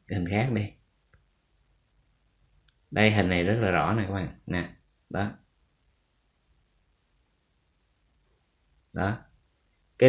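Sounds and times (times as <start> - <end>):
man's voice: 0.1 - 0.7, 3.0 - 5.4, 9.0 - 9.2
clicks: 1.0 - 1.3, 2.6 - 2.9.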